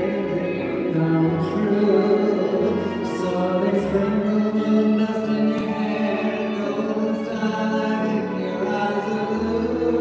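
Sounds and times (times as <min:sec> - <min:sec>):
live music with singing: 0:00.0 - 0:10.0.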